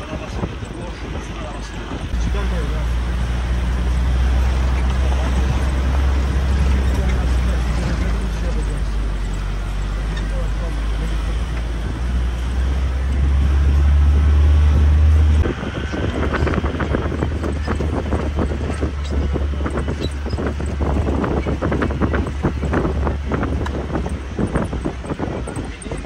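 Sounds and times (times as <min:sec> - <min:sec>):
vehicle engine drone and road noise: 0:00.0 - 0:26.0.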